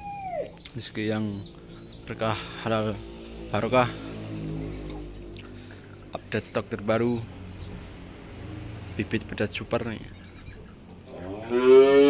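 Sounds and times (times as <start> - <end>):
cow mooing: 11.1 - 12.0.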